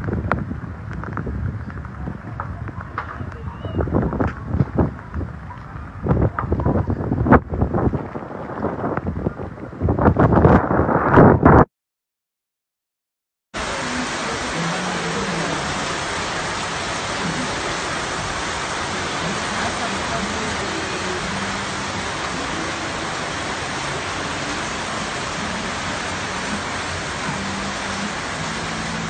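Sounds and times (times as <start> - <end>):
heavy rain rushing: 0.0 - 10.2, 13.6 - 29.0.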